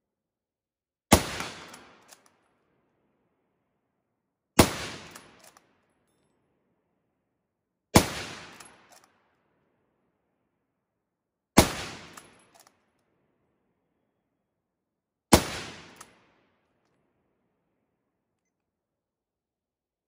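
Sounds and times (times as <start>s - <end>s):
rifle shots echoing: 1.1s - 2.0s, 8.0s - 8.9s, 15.3s - 16.2s.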